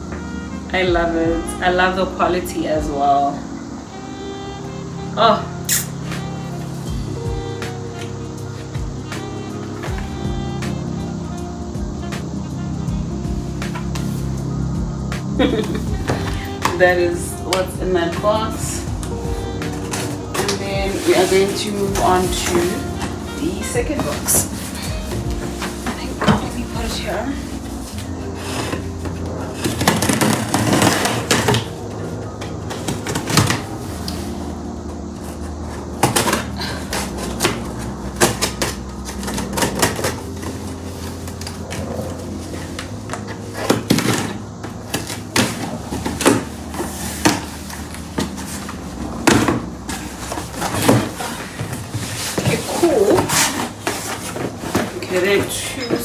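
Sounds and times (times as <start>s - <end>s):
cardboard crackling: 15.2s - 56.0s
box flaps pulled open: 27.8s - 31.8s
scissors cutting packing tape: 29.6s - 31.8s, 35.3s - 55.1s.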